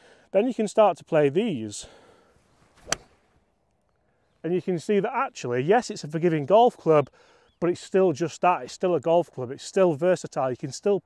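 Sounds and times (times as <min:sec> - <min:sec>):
golf club striking ball: 0:02.8 - 0:03.2.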